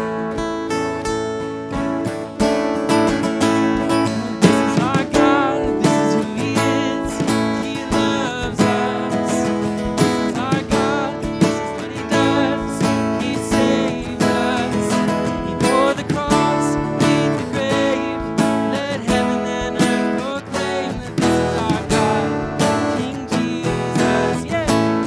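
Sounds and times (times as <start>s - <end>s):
strummed acoustic guitar: 0.0s - 25.0s
voices singing: 2.9s - 25.0s.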